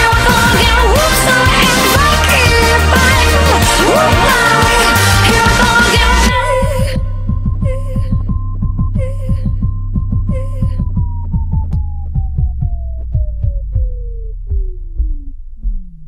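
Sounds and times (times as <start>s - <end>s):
low throbbing hum: 0.0s - 16.0s.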